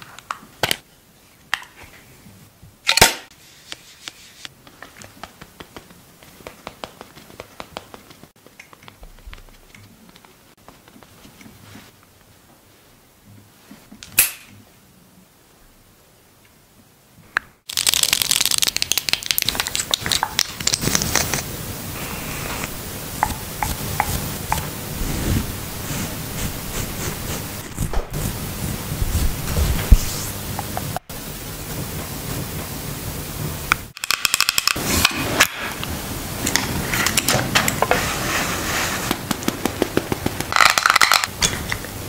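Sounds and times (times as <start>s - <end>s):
steady hiss: 17.1s - 34.0s, 34.7s - 42.0s.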